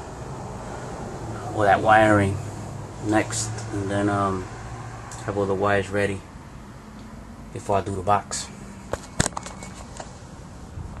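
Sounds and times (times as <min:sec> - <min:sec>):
camera handling knocks and clicks: 0:08.9 - 0:10.1.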